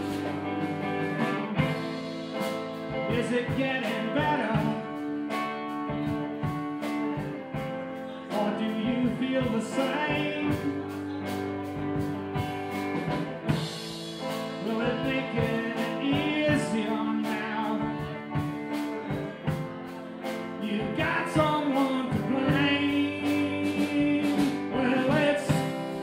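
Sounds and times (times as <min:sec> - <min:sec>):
man singing: 0:00.0 - 0:12.4, 0:13.5 - 0:26.0
live rock band playing: 0:00.0 - 0:26.0.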